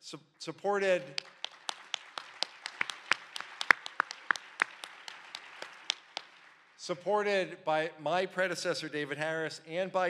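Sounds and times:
audience applauding: 0:00.8 - 0:06.9
sharp close claps: 0:00.8 - 0:06.9.

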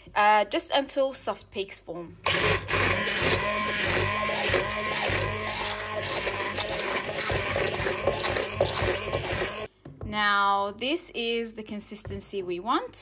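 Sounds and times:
electric hand blender whipping cream: 0:02.3 - 0:09.7.

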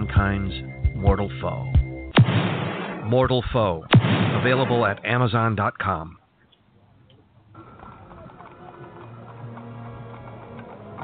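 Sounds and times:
horse hooves clopping: 0:06.5 - 0:11.0.

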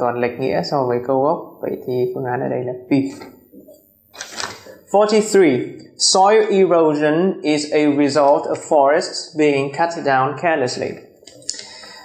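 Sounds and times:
man speaking: 0:00.0 - 0:03.8, 0:04.7 - 0:11.2
paper rustling: 0:04.2 - 0:04.8.

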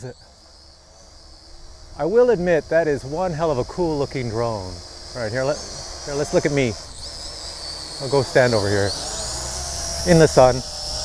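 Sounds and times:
drone propellers whining: 0:00.0 - 0:11.0.

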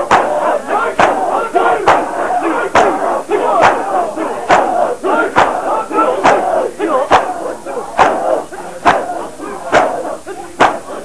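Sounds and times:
men chanting: 0:00.0 - 0:11.0
men slapping chests: 0:00.0 - 0:11.0.

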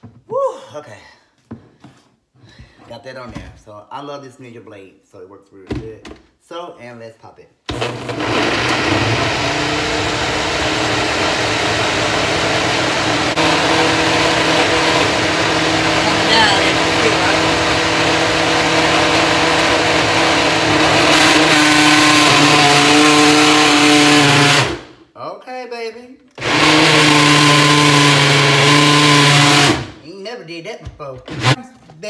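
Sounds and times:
blender motor whirring: 0:07.7 - 0:24.9, 0:26.4 - 0:30.0, 0:31.3 - 0:31.6.

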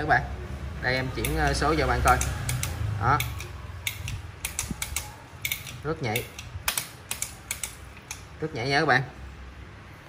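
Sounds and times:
bicycle derailleur clicking: 0:01.0 - 0:08.3.

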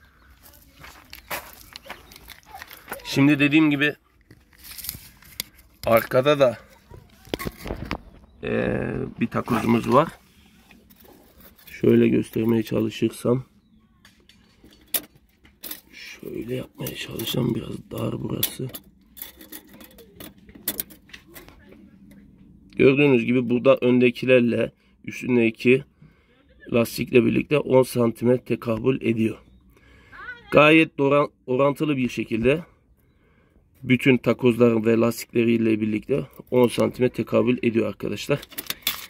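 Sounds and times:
footsteps crunching on gravel: 0:00.2 - 0:03.3.

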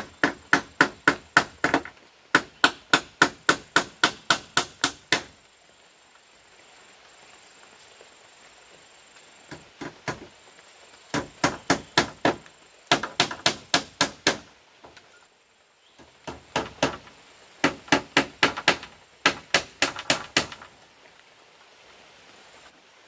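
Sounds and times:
hammer striking bamboo: 0:00.0 - 0:05.4, 0:09.5 - 0:10.3, 0:11.1 - 0:14.5, 0:16.0 - 0:20.7.

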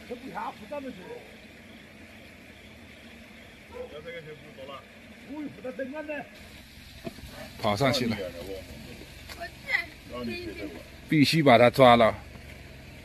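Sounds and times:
distant talking: 0:00.0 - 0:13.0
low background hiss: 0:00.0 - 0:13.0.

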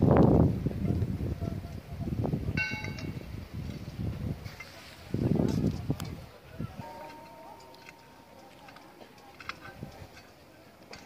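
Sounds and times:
low background murmur: 0:00.5 - 0:11.0
metallic bell ding: 0:02.6 - 0:03.2, 0:06.8 - 0:08.8.

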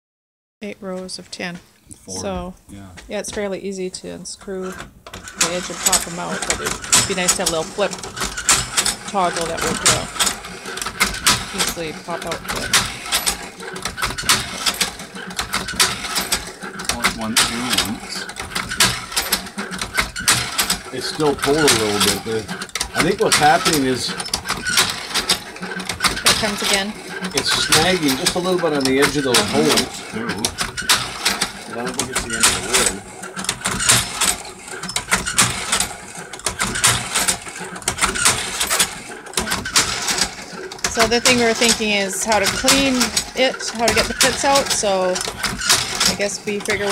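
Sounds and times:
cherry pitter mechanism clacking: 0:04.4 - 0:46.9.

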